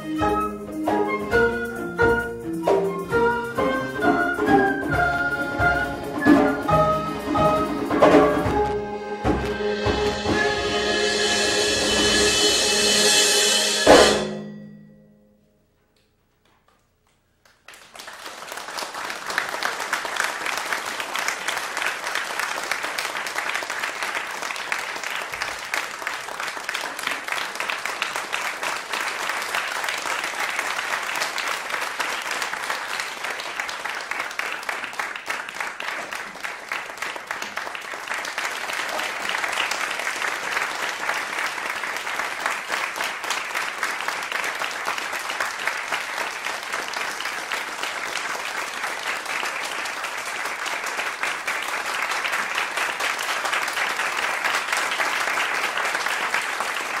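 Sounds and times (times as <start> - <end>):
audience applause: 17.4 - 57.0.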